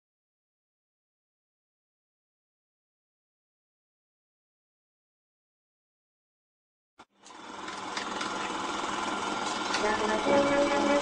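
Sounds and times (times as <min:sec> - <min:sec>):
film projector running: 0:07.0 - 0:11.0.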